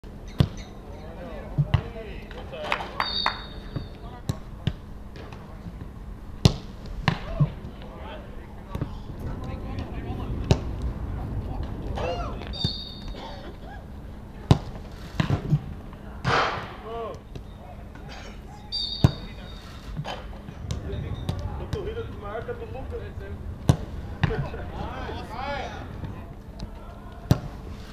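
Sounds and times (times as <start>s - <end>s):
football kicks: 6.4s - 7.8s, 20.1s - 22.5s, 23.6s - 24.6s
players shouting: 11.9s - 14.1s.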